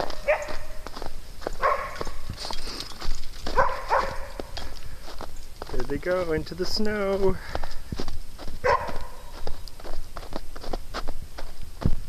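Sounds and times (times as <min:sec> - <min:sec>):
footsteps crunching in snow: 0:00.0 - 0:12.0
dog barking: 0:00.2 - 0:00.8, 0:01.6 - 0:02.2, 0:03.5 - 0:04.6, 0:08.6 - 0:09.4.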